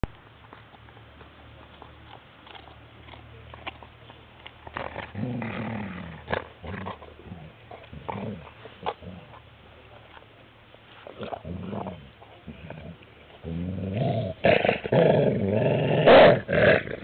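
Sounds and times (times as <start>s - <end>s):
dog crunching on bone: 0.1s - 17.0s
dog growling: 4.7s - 9.4s, 11.1s - 17.0s.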